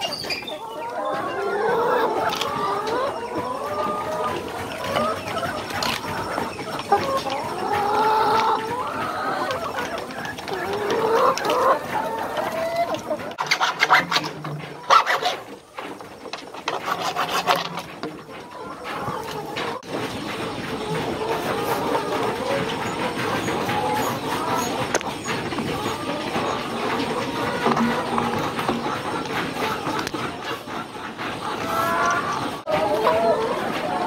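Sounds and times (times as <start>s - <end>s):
chickens clucking: 0.0s - 34.0s.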